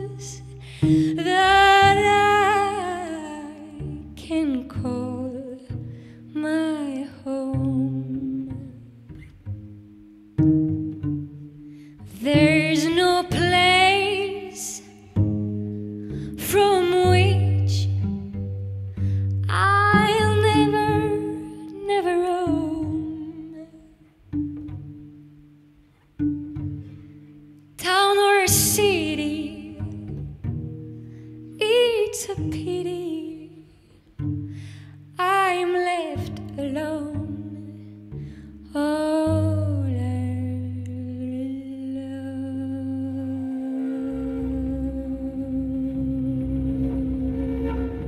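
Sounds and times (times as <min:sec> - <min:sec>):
woman singing with vibrato: 0:00.0 - 0:05.7, 0:12.1 - 0:15.0, 0:38.8 - 0:48.0
plucked cello notes: 0:00.0 - 0:48.0
hummed vocal note: 0:42.8 - 0:48.0.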